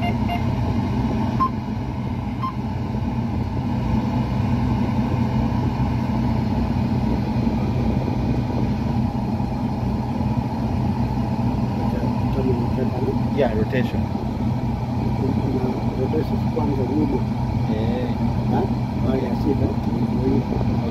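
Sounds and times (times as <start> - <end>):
combine harvester engine hum: 0.0 - 20.9.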